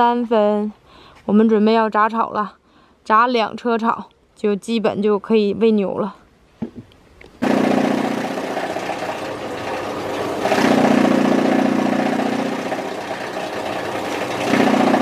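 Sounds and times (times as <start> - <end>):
feed cutter machine running: 7.4 - 15.0.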